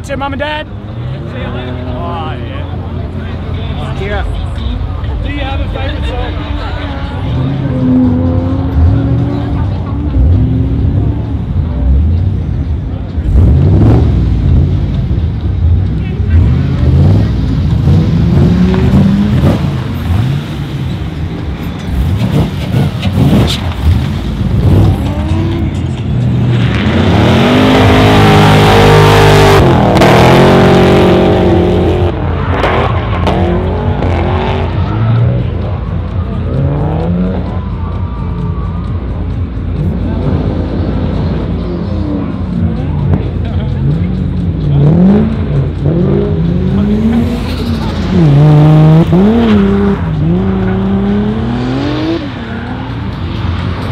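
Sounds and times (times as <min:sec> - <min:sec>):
car engine revving: 0:00.6 - 0:53.9.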